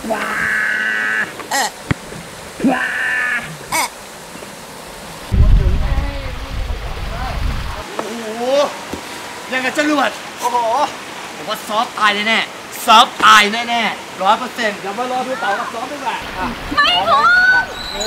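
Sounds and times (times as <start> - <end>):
loud low rumble: 5.3 - 7.8
squeaky chirping call: 17.7 - 18.0.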